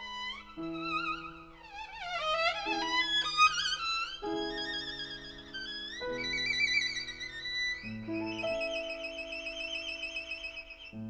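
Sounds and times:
violin with vibrato: 0.0 - 11.0.

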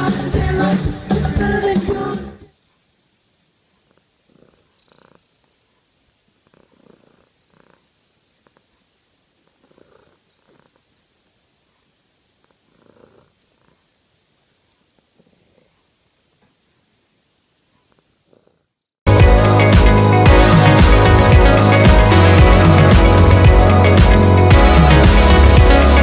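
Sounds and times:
cat purring: 3.7 - 16.6, 17.7 - 18.9.

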